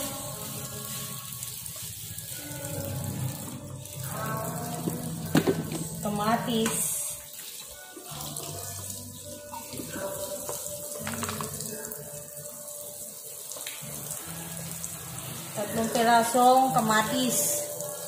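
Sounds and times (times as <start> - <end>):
tap water running into sink: 0.0 - 18.0
colander knocking: 4.8 - 6.0, 10.5 - 11.6.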